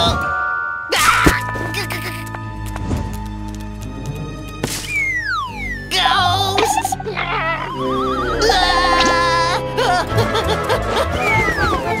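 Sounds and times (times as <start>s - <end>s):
background music: 0.0s - 12.0s
startled vocal cry: 6.6s - 10.1s.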